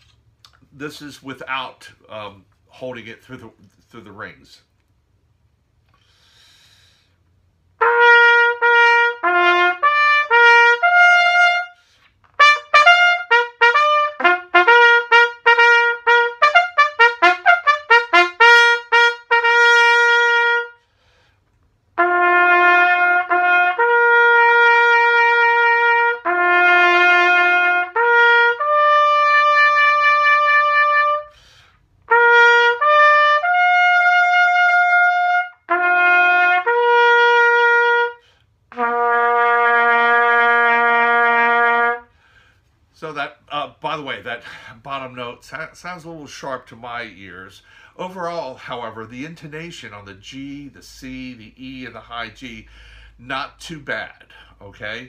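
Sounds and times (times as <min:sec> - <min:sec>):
bugle call: 0:12.4 - 0:20.8.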